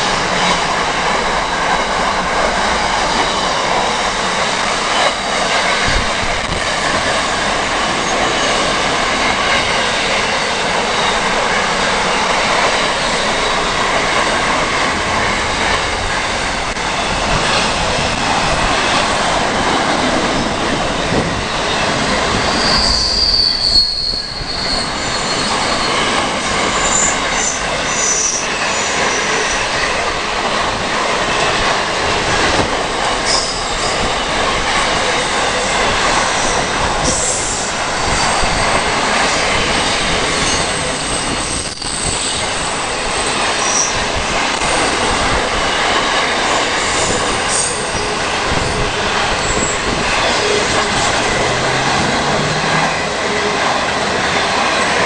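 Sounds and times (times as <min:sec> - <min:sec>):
train wheels rumbling on rail: 0:00.0 - 0:55.0
high-pitched wheel squeals: 0:22.3 - 0:29.6, 0:33.3 - 0:34.2.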